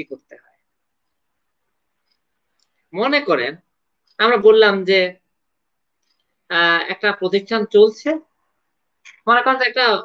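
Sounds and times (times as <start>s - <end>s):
man speaking: 0.0s - 0.6s, 2.9s - 5.3s, 6.5s - 8.4s, 9.1s - 10.0s.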